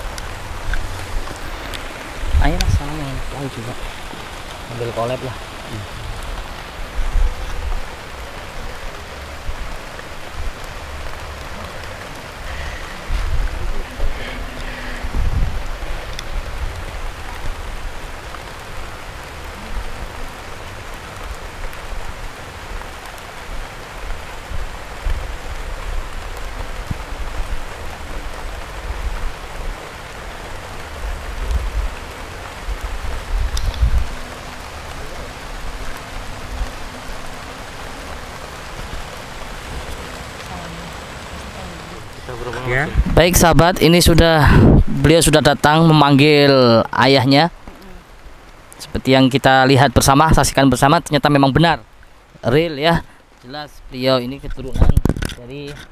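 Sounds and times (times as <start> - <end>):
low rumbles: 0.0 - 46.2
steady rushing noise: 0.0 - 55.9.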